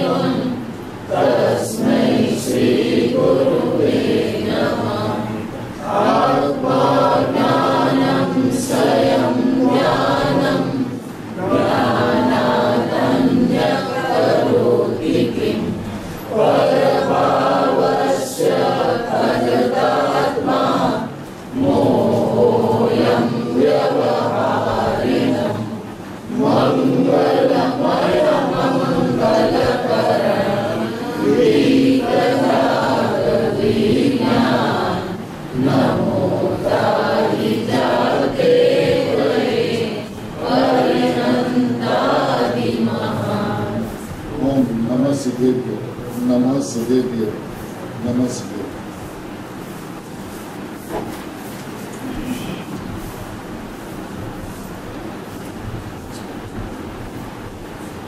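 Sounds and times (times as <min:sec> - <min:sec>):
voices chanting a hymn: 0:00.0 - 0:56.4.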